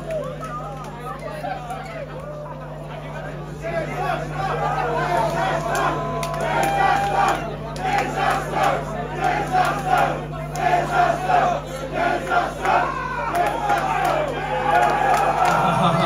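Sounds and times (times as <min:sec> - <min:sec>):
sound system low hum: 0:00.0 - 0:16.0
crowd chanting shouts: 0:03.5 - 0:16.0.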